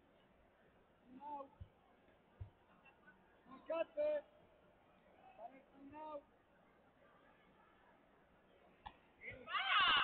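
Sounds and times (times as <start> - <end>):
high-pitched human shout: 9.4 - 10.0.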